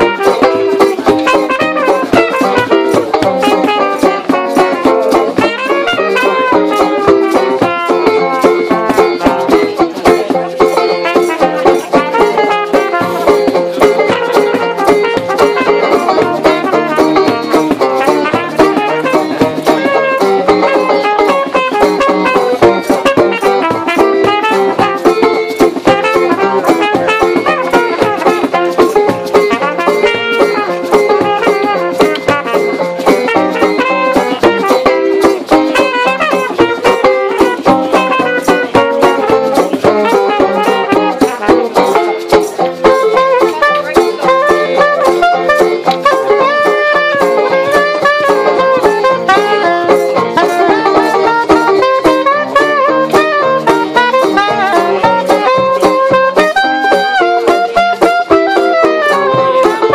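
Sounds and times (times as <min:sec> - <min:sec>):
alto saxophone: 0:00.0 - 0:09.6, 0:11.0 - 0:59.9
strummed stringed instrument: 0:00.0 - 0:59.9
trumpet: 0:00.0 - 0:59.9.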